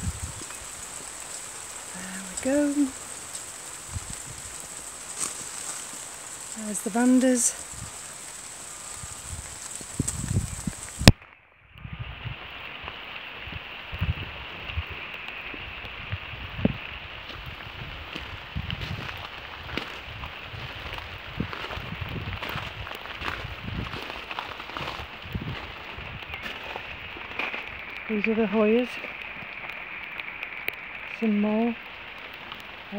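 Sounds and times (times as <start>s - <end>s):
steady rain patter: 0.0s - 32.9s.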